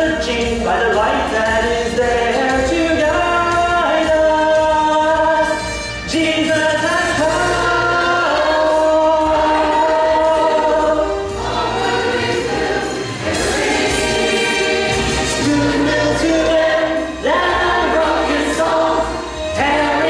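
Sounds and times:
instrumental accompaniment: 0.0 - 20.0
church choir singing: 7.4 - 20.0.

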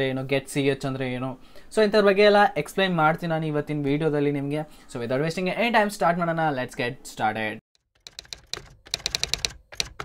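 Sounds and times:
keyboard typing: 7.8 - 10.0.

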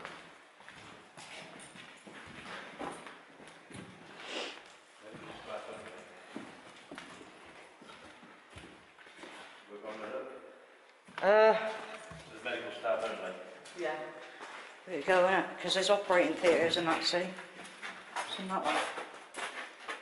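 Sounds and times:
footsteps on hard floor: 0.0 - 9.6.

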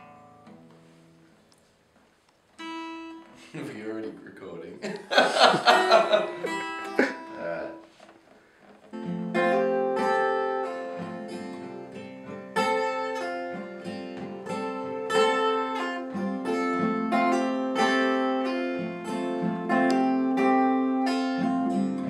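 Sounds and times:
acoustic guitar strummed: 0.0 - 1.8, 2.6 - 4.5, 5.1 - 22.0
short laugh: 4.9 - 7.7.

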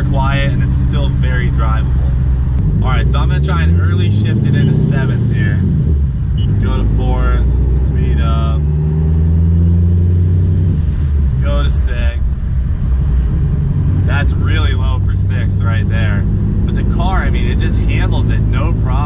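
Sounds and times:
car engine with loud exhaust: 0.0 - 19.0
gear change: 0.0 - 19.0.

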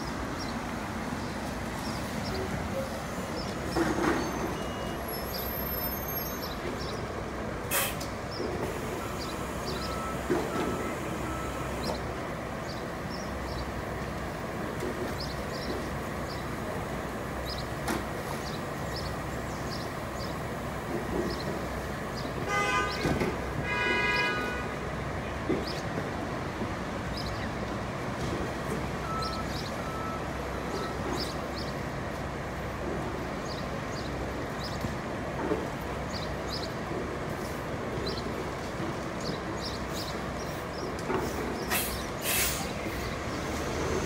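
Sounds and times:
bus engine rumbling: 0.0 - 44.0.

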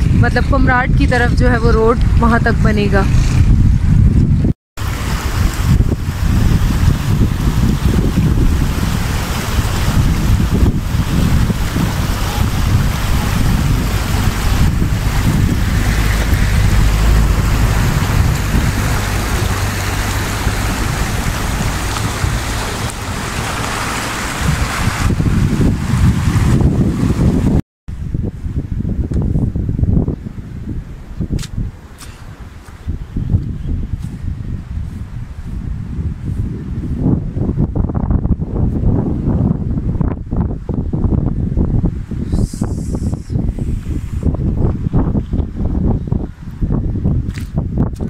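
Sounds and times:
wind buffeting microphone: 0.0 - 48.0
river rushing over stones: 4.8 - 27.5.

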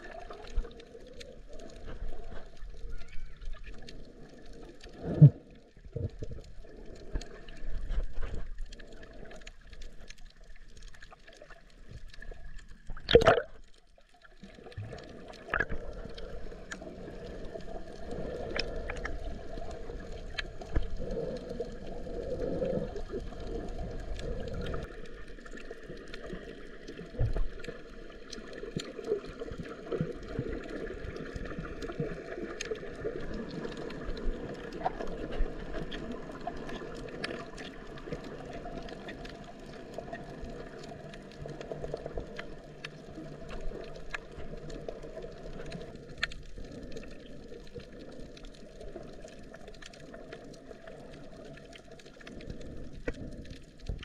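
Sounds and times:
faint clicks: 0.0 - 54.0
underwater rushing: 0.0 - 54.0.

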